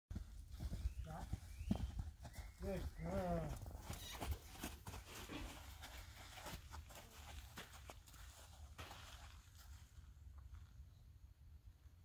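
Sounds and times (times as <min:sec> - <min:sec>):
horse hoofbeats on sand: 0:00.1 - 0:09.0.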